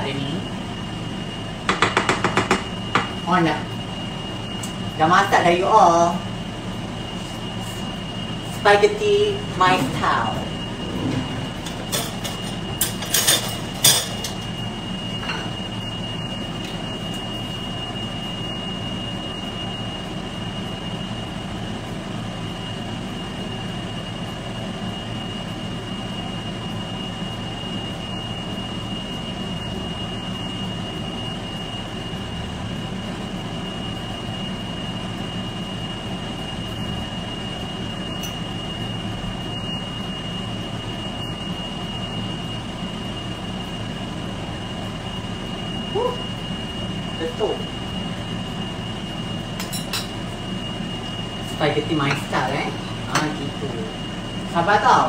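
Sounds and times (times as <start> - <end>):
extractor fan humming and whining: 0.0 - 55.0.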